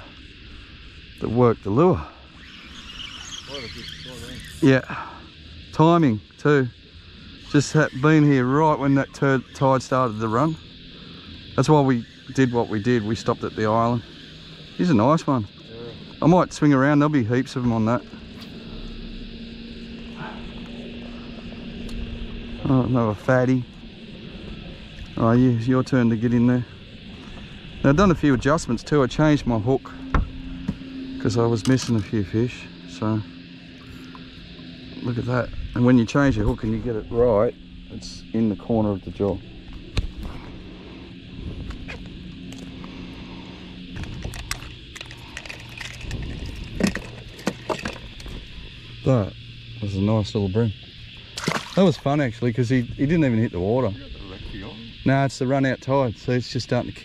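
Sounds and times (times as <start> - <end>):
electric trolling motor humming: 0.0 - 57.0.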